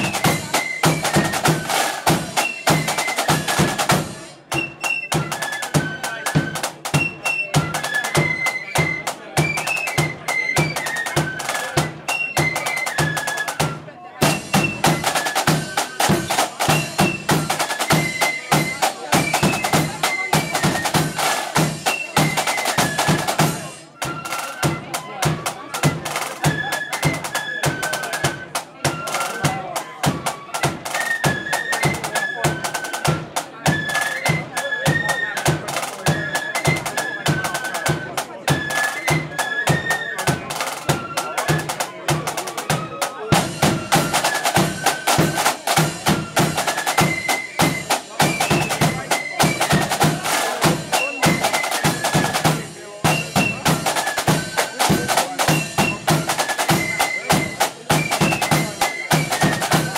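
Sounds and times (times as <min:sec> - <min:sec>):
flutes playing melody: 0:00.0 - 0:59.9
snare drum beating and rolls: 0:00.0 - 0:59.9.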